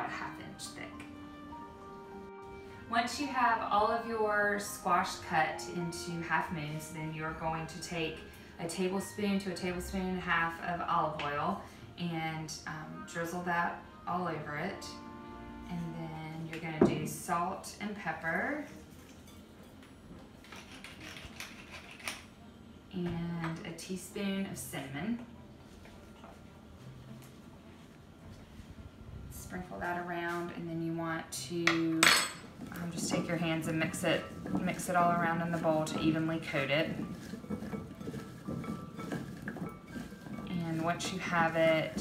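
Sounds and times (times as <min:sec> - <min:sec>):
squash slices shuffling in bowl: 0:33.3 - 0:42.0.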